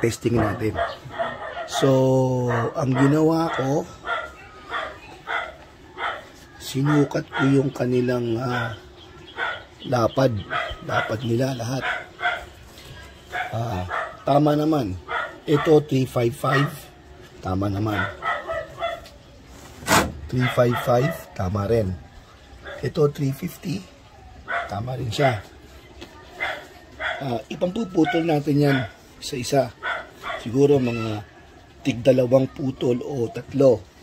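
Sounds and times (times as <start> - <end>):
dog barking: 0.0 - 19.2, 20.3 - 21.6, 22.6 - 22.9, 24.4 - 25.6, 26.2 - 31.2.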